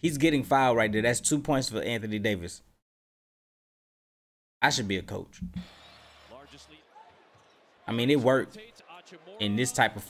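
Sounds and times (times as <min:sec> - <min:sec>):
man's loud voice: 0:07.9 - 0:10.0.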